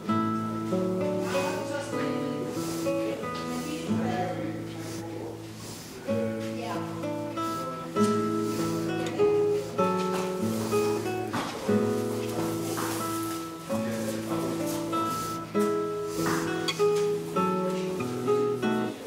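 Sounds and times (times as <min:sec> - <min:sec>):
acoustic guitar melody: 0:00.0 - 0:19.0.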